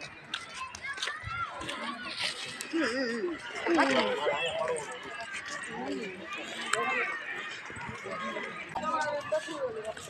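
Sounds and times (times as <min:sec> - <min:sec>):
people talking: 0:00.0 - 0:10.0
child's voice: 0:00.3 - 0:03.4.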